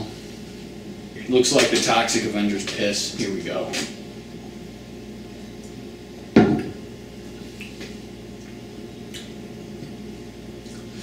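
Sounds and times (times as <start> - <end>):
glass set down on wooden table: 6.4 - 6.8.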